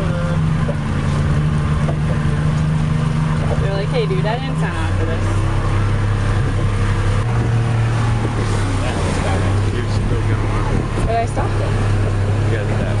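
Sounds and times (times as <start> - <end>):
boat engine humming: 0.0 - 13.0.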